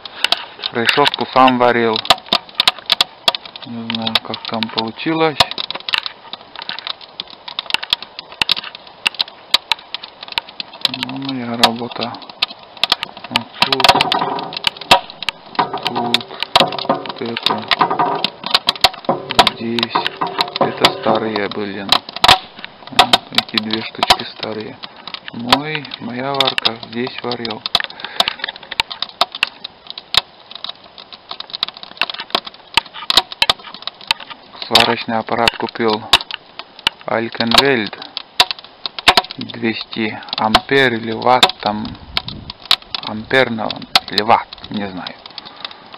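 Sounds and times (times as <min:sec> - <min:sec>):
wood fire crackling: 0:00.0 - 0:45.9
man talking: 0:00.7 - 0:02.1, 0:03.6 - 0:05.5, 0:10.9 - 0:12.2, 0:13.3 - 0:14.6, 0:15.6 - 0:18.2, 0:19.1 - 0:22.0, 0:22.9 - 0:27.6, 0:34.6 - 0:36.1, 0:37.1 - 0:38.1, 0:39.4 - 0:42.0, 0:43.0 - 0:45.2.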